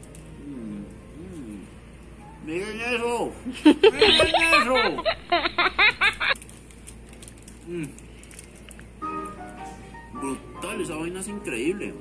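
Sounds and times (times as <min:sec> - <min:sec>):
person laughing: 0:03.6 - 0:06.4.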